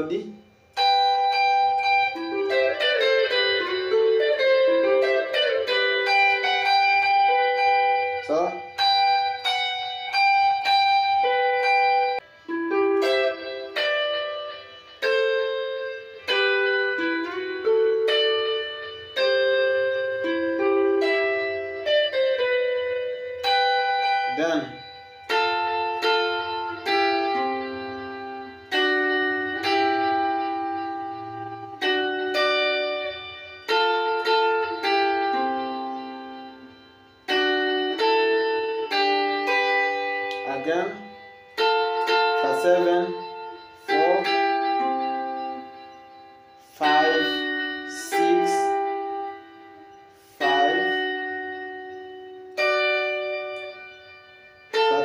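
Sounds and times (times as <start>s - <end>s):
electric guitar lead melody: 0.0s - 55.0s.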